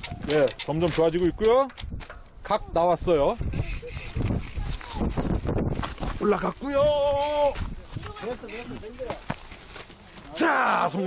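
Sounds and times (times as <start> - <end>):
sharp clicks: 0.0 - 2.3.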